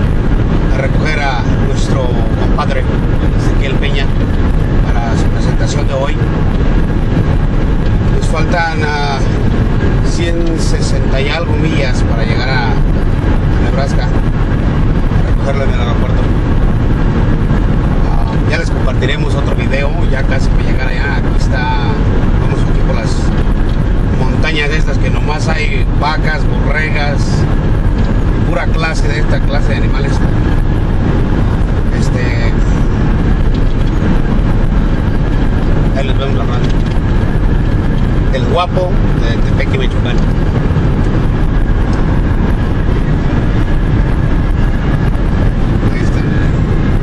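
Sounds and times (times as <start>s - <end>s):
vehicle cabin road and engine noise: 0.0s - 47.0s.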